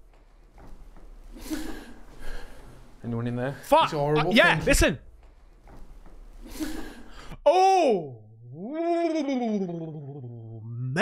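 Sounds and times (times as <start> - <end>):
man's drawn-out vocal ohhh: 7.4 - 11.0.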